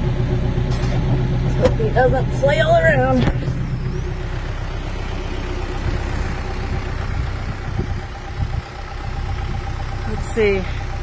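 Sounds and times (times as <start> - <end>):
tractor engine idling: 0.0 - 11.0.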